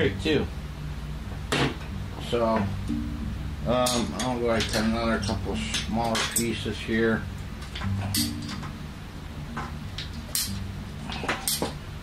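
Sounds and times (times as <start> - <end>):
pipe cutter clicks and snaps: 10.0 - 10.6, 11.3 - 11.7.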